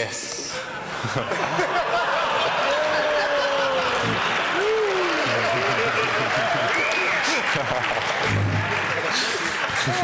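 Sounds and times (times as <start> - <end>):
audience applauding: 1.2 - 10.0.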